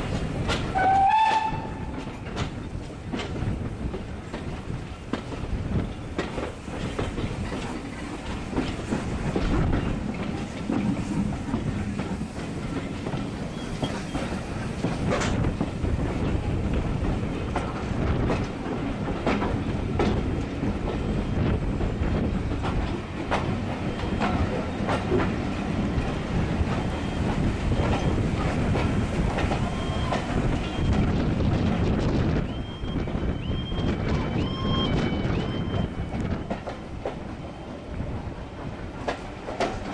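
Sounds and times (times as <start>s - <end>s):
train carriage rumbling: 0.0s - 39.9s.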